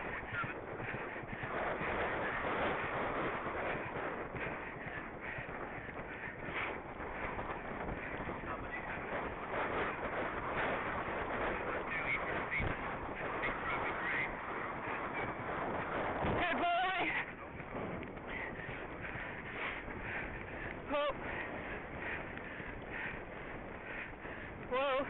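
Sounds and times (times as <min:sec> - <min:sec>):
horse breathing: 0:00.0 - 0:16.2, 0:17.2 - 0:24.7
wind noise on microphone: 0:00.0 - 0:25.0.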